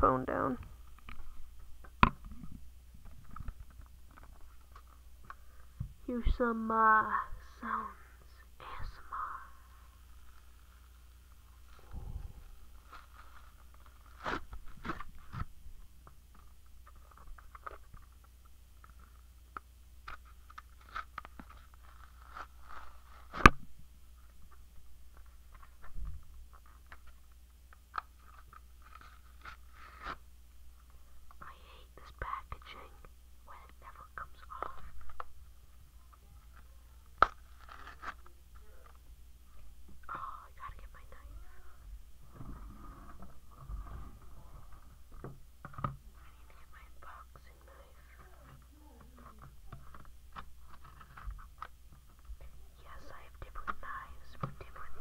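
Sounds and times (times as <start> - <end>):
person whispering: 6.9 - 9.7, 31.4 - 35.0, 40.0 - 41.8, 46.1 - 49.5, 52.4 - 55.0
blister packaging being peeled: 20.0 - 23.5, 27.9 - 30.2, 37.2 - 38.3.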